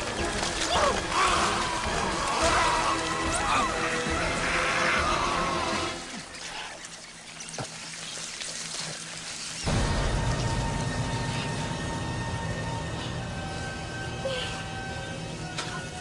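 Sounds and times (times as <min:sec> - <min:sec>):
wet squelching creatures: 0:00.0 - 0:11.9
sustained film score: 0:00.0 - 0:16.0.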